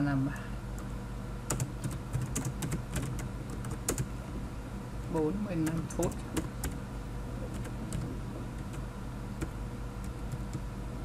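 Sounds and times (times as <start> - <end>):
computer keyboard typing: 1.5 - 4.1, 5.0 - 6.8, 7.5 - 8.8, 9.4 - 10.7.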